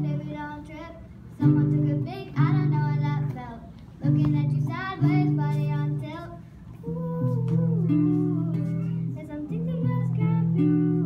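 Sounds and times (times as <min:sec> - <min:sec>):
girl singing: 0:00.0 - 0:11.0
acoustic guitar strumming: 0:01.4 - 0:06.3, 0:07.0 - 0:11.0.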